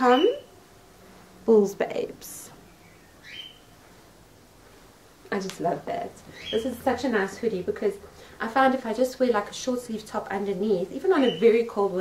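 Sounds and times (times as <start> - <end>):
faint high chirp: 0.0 - 0.6, 2.6 - 3.7, 6.3 - 6.8, 11.1 - 11.7.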